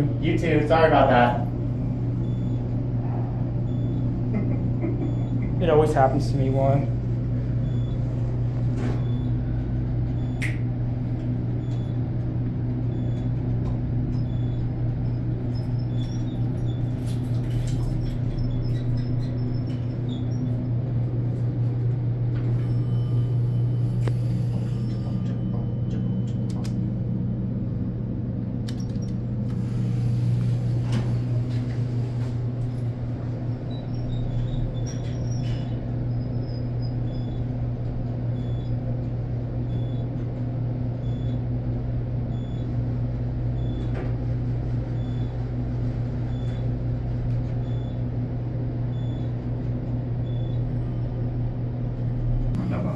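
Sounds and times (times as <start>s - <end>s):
elevator hum and rumble: 0.0s - 52.9s.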